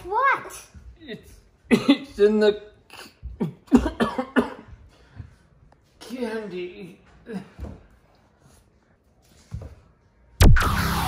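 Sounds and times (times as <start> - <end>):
person coughing: 1.7 - 2.2, 2.9 - 4.8.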